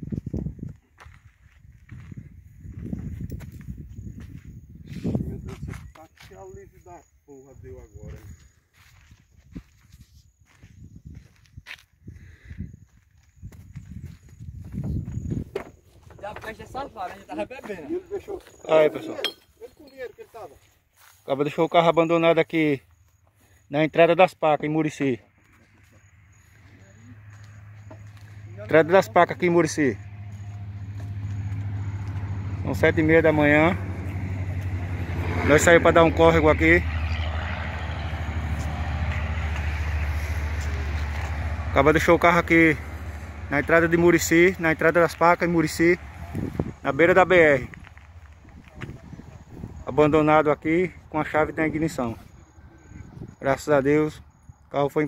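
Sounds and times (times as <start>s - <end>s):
footsteps on dirt: 0.0s - 6.9s, 7.5s - 21.7s, 24.6s - 53.4s.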